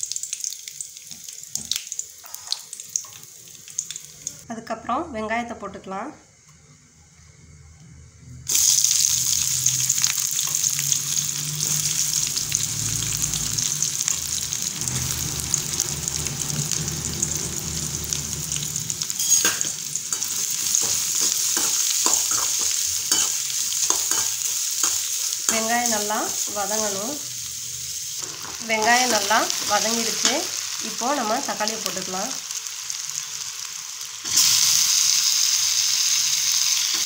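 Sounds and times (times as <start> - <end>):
onions sizzling in hot oil: 0.0 - 4.4, 8.5 - 37.0.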